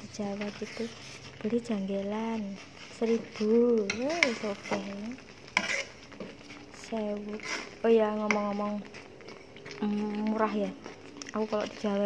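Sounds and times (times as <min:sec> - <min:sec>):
spoon scraping a frying pan: 0:00.1 - 0:09.9.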